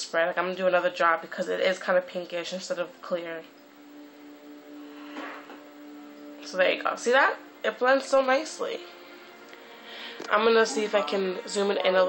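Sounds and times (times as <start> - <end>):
steady low hum: 0.1 - 12.0.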